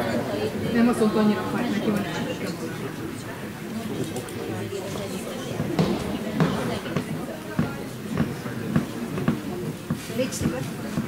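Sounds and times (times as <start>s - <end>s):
murmur of voices: 0.0s - 11.0s
sharp knocks: 5.6s - 10.0s.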